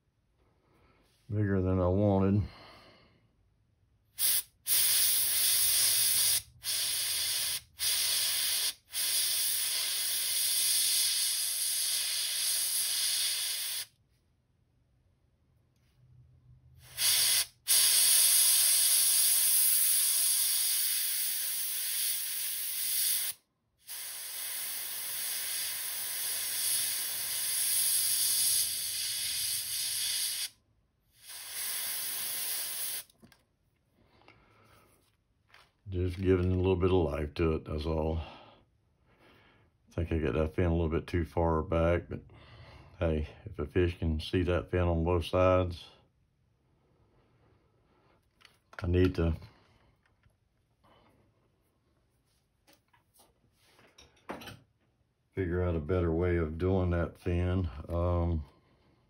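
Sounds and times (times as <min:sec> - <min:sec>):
airbrush spraying hiss: 0:04.2 - 0:13.9, 0:16.8 - 0:30.6, 0:31.2 - 0:33.1.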